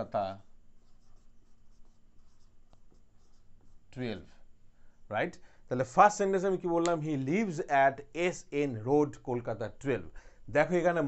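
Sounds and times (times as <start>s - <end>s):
marker pen writing on whiteboard: 0.7s - 4.0s.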